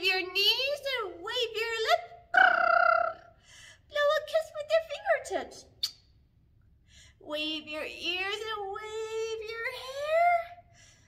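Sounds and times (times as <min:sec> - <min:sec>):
soft breath: 0:06.7 - 0:07.2, 0:10.6 - 0:11.0.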